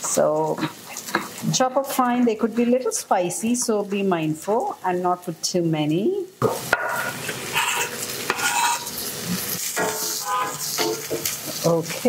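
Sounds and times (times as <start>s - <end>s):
onions sizzling in oil: 0.0s - 12.0s
wooden spatula scraping pan: 6.8s - 12.0s.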